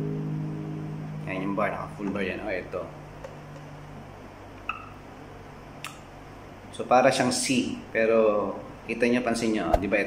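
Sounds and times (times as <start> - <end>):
guitar chord: 0.0 - 2.8.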